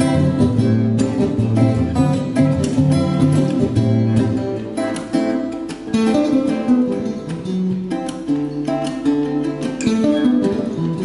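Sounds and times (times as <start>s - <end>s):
acoustic guitar duet: 0.0s - 11.0s.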